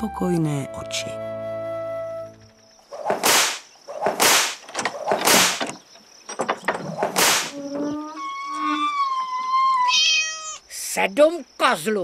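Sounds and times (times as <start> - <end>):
whip cracking: 3.0 - 5.6, 7.0 - 7.5.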